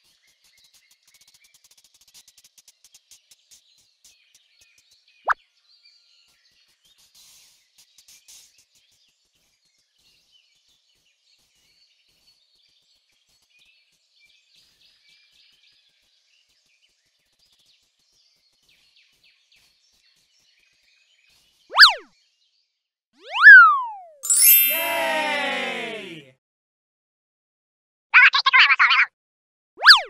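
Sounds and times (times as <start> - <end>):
cartoon boing sound effect: 21.7 - 22.0, 23.3 - 24.9, 29.8 - 30.0.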